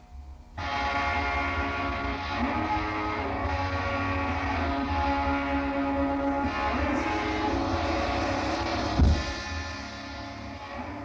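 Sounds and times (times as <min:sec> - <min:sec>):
electronic organ sustained chord: 0:00.6 - 0:11.0.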